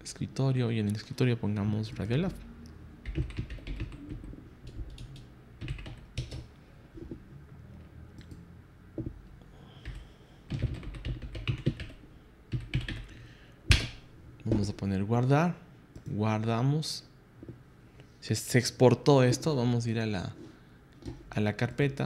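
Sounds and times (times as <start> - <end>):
computer keyboard typing: 3.0 - 6.5, 9.8 - 13.1.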